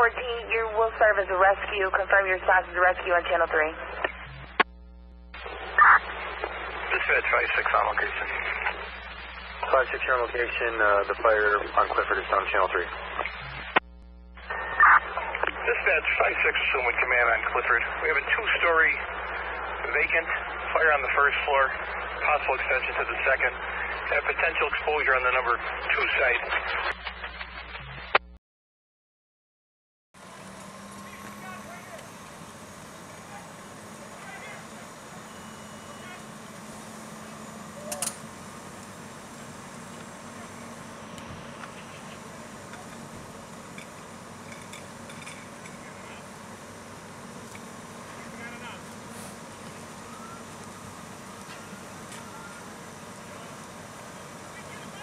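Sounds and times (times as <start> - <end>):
fire engine humming: 0.0 - 12.9, 30.2 - 55.0
faint voices: 5.4 - 9.0, 9.6 - 13.7, 14.4 - 26.9, 30.9 - 55.0.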